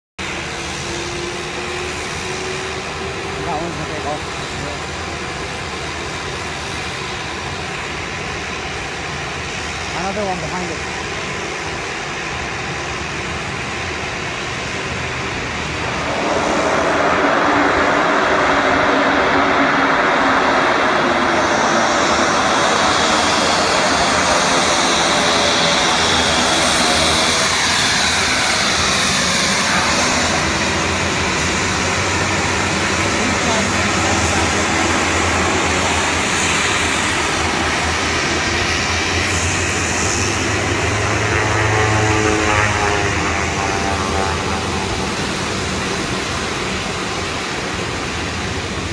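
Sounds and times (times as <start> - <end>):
falling engine whine: 0.2 - 48.9
propeller plane engine drone: 0.2 - 48.9.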